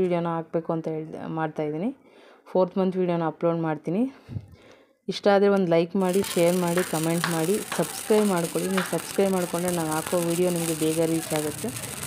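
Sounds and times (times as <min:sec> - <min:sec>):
person speaking: 0:06.0 - 0:12.0
sparkler fizzing and crackling: 0:06.0 - 0:12.0.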